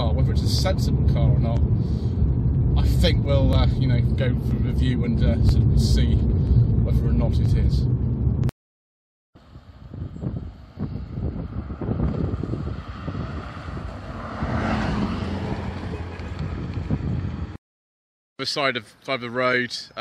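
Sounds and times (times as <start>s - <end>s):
car engine approaching: 0.0s - 8.5s, 9.4s - 17.6s.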